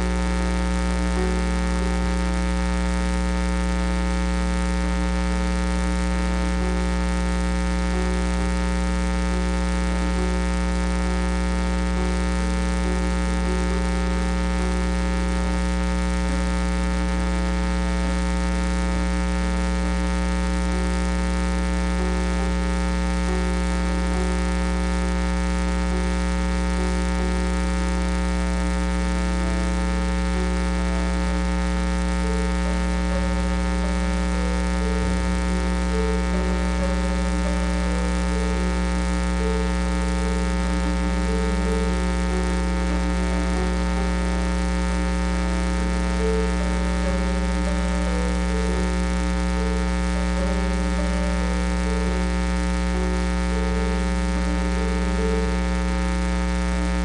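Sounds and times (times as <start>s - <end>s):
mains hum: 0.0s - 57.0s.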